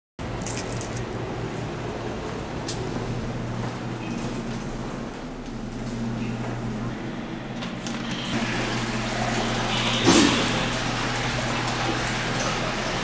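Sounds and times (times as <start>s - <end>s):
steady low hum: 0.2s - 10.0s
toilet flush water rushing: 7.7s - 13.0s.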